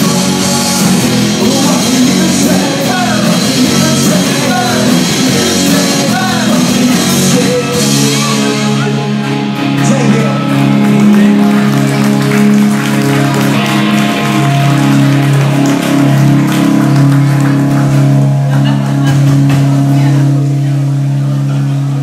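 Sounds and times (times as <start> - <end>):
electric guitars and bass chord: 0.0 - 22.0.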